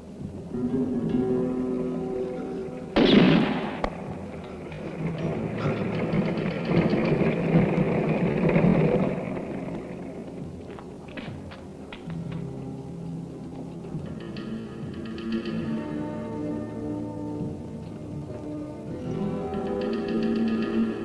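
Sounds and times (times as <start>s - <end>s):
film music: 0.0s - 21.0s
noisy film sound: 0.0s - 21.0s
loud gunshot: 3.0s - 4.0s.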